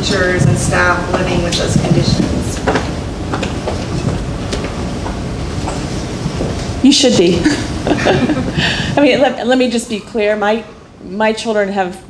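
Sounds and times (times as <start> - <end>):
steady low rumble: 0.0 - 11.4.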